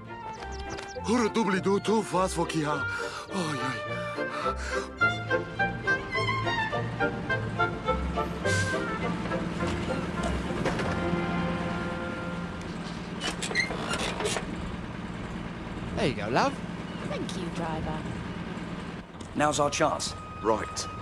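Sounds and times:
orchestral music: 0.0s - 13.0s
bus engine idling: 0.0s - 21.0s.

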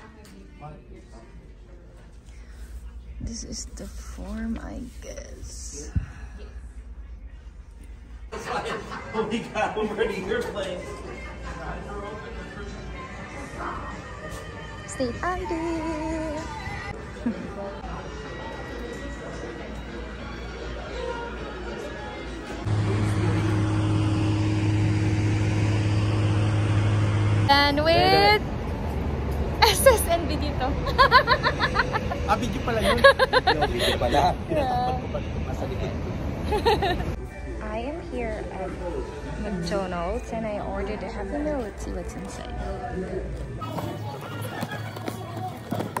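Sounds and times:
outdoor background noise: 21.4s - 46.0s
steady low hum: 22.5s - 43.6s.

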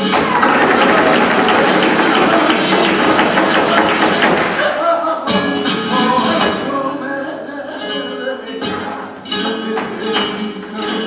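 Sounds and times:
flamenco footwork strikes: 0.0s - 6.7s, 9.3s - 10.8s
flamenco guitar: 0.0s - 11.0s
handclaps: 0.2s - 4.5s.

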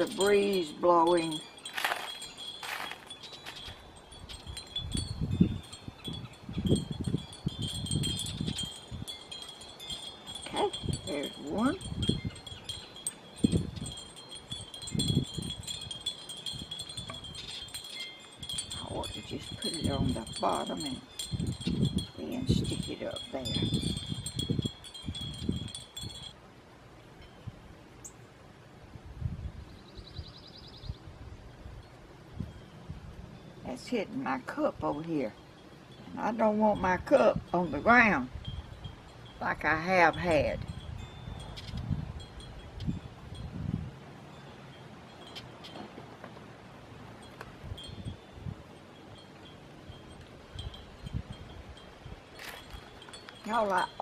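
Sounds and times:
wind buffeting the microphone: 0.0s - 26.4s, 28.9s - 46.4s, 47.4s - 48.8s, 49.8s - 54.0s
wind chimes tinkling: 0.0s - 26.4s, 31.8s - 54.0s.

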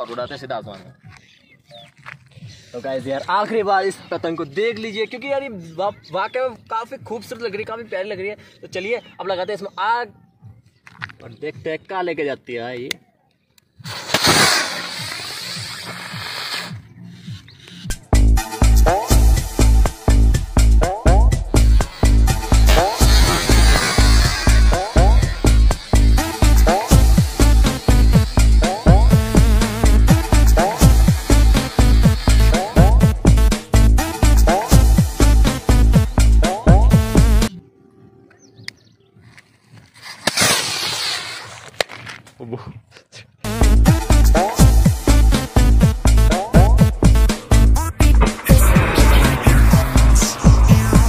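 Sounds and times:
rocket motor hissing whoosh: 13.8s - 16.8s, 21.6s - 28.7s, 29.3s - 32.8s, 48.1s - 51.0s.

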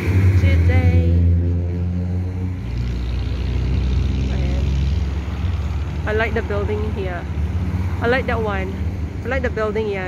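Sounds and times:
passing engine hum: 0.0s - 10.0s
traffic engines rumbling: 0.0s - 10.0s.

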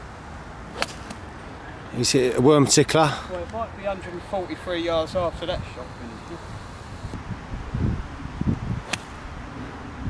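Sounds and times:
golf club striking ball: 0.7s - 1.2s, 8.9s - 9.2s
wind rumble on microphone: 6.5s - 10.0s.

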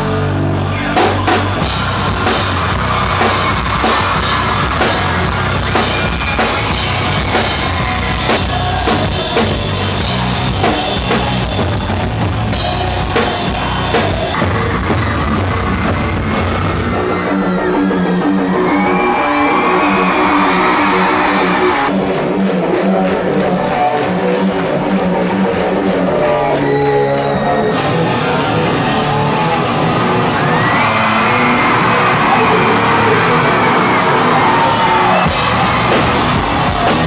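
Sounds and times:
drum kit: 0.0s - 37.0s
electric guitars: 0.0s - 37.0s.

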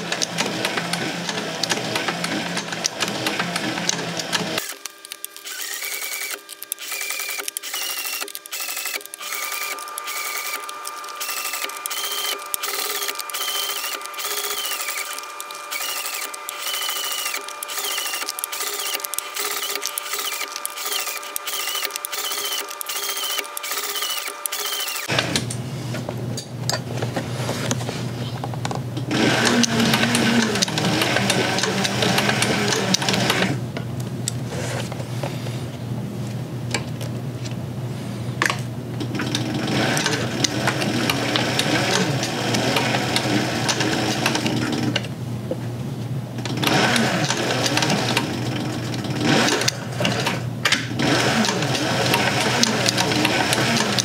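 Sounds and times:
sewing machine clacking: 0.0s - 25.2s, 29.1s - 33.6s, 39.1s - 45.1s, 46.4s - 54.0s.

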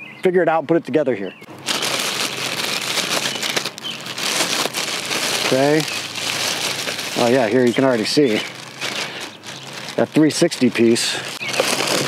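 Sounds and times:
plastic bag crinkling: 1.5s - 12.0s.

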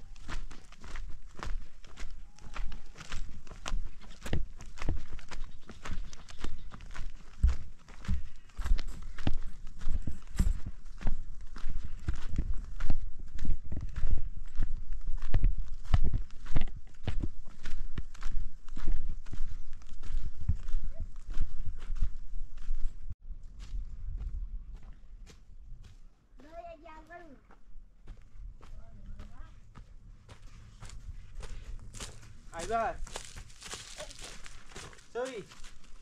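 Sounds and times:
footsteps on stony dirt track: 0.0s - 36.0s.

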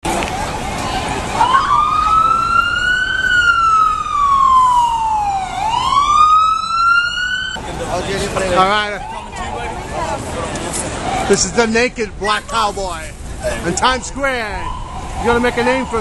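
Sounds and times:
street noise: 0.0s - 16.0s
emergency siren wailing: 0.2s - 7.6s, 8.8s - 10.0s, 13.6s - 16.0s.

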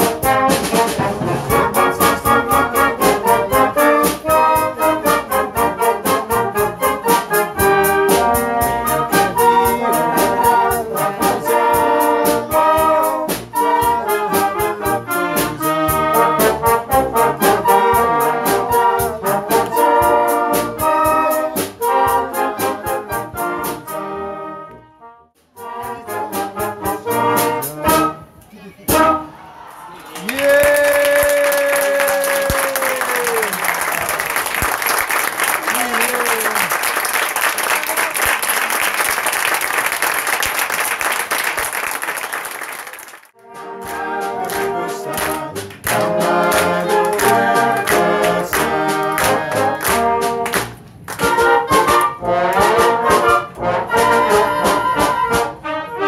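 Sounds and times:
concert band playing: 0.0s - 24.9s, 25.5s - 29.3s, 43.4s - 56.0s
audience applauding: 29.6s - 51.4s
person calling out: 35.6s - 36.7s.

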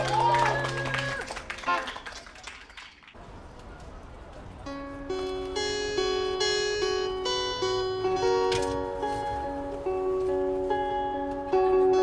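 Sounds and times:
guitar plucked melody: 4.6s - 12.0s.

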